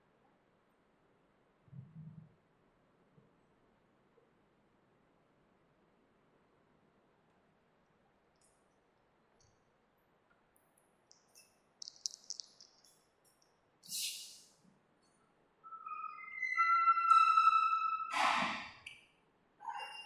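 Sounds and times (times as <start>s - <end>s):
whiteboard marker squeaking: 15.7s - 18.2s.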